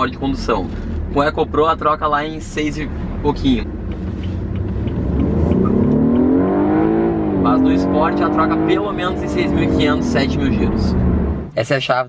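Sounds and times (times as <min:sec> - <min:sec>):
car engine revving under acceleration: 0:00.0 - 0:11.6.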